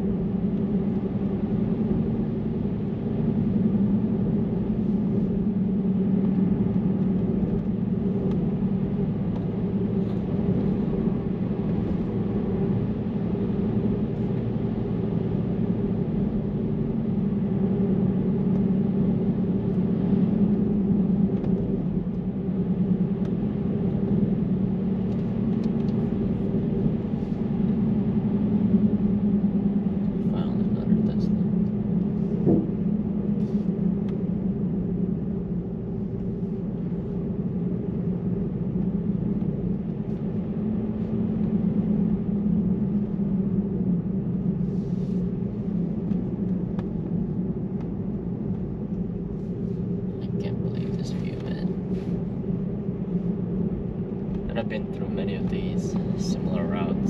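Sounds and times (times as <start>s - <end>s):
constant low hum: 0.0s - 57.0s
road and tyre noise: 0.0s - 57.0s.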